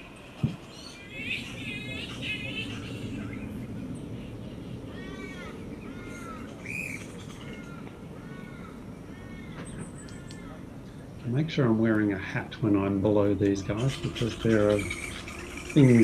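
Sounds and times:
flying foxes squawking: 0.0 - 10.7, 12.2 - 16.0
low background noise: 0.0 - 16.0.

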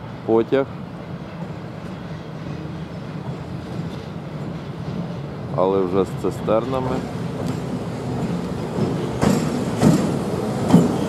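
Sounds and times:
freight train rumbling: 0.0 - 11.0.

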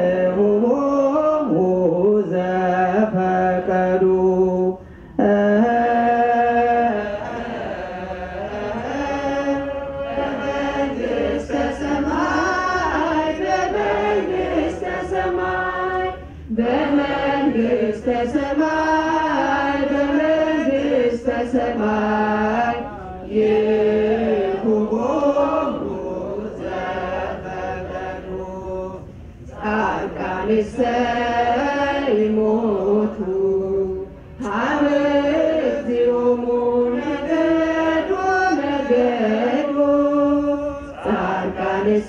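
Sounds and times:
church hymn chanted: 0.0 - 42.0.

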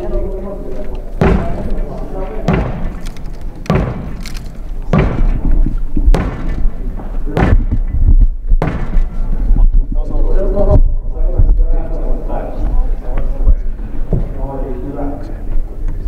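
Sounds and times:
heavy thuds ringing in a hall: 1.2 - 3.0, 3.7 - 4.2, 4.9 - 9.3.

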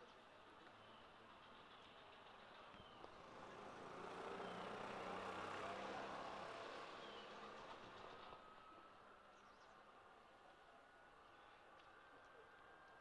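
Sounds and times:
faint street ambience: 0.0 - 13.0.

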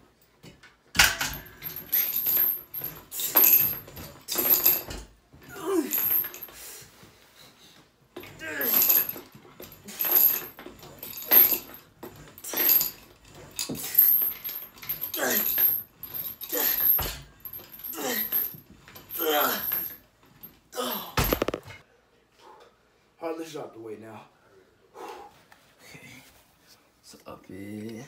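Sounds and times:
man grunting exhalations: 20.8 - 21.4.

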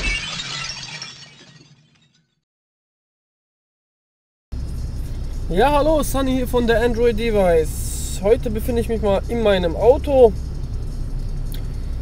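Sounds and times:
shattering burst with tinkles: 0.0 - 2.3.

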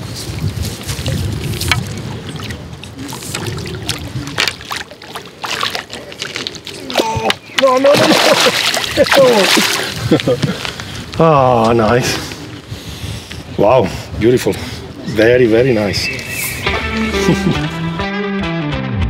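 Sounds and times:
fish thrashing and splashing: 0.8 - 10.3.

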